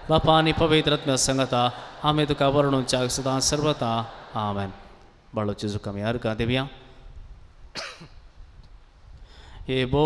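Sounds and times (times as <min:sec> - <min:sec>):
person coughing: 0:07.8 - 0:08.2.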